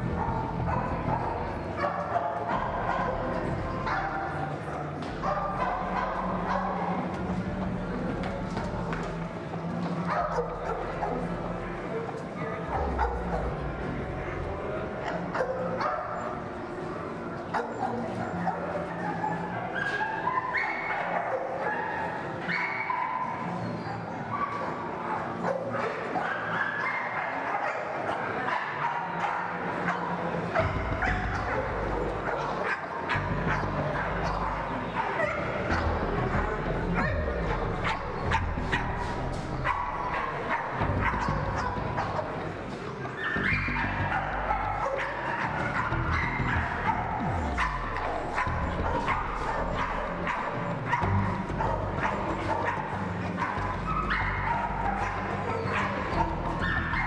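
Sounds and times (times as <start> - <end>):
dogs barking: 0.0 - 57.0
background music with melody: 28.4 - 57.0.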